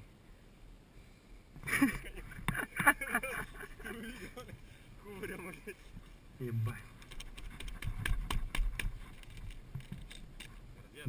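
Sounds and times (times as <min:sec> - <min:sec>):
glove rustling against microphone: 0:05.6 - 0:11.0.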